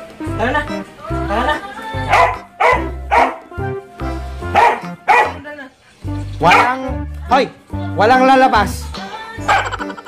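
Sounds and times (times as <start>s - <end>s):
background music with low beat: 0.0s - 10.0s
dog barking: 2.1s - 3.5s, 4.5s - 5.4s, 6.4s - 6.8s, 9.4s - 9.8s.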